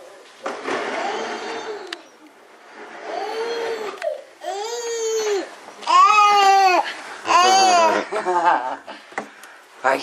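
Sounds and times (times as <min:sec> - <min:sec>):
baby crying: 0:03.1 - 0:08.1.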